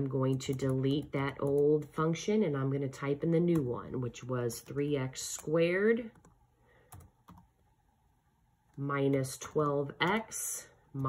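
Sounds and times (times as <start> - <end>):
faint typing clicks: 6.2 - 7.5.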